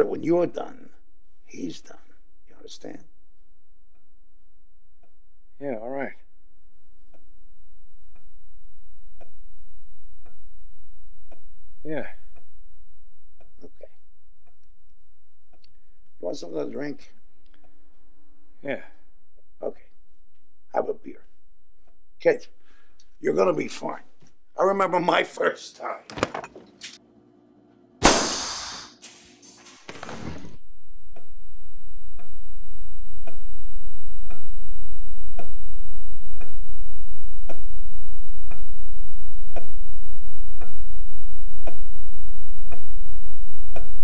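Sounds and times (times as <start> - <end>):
gunshot: 28.0 - 29.0.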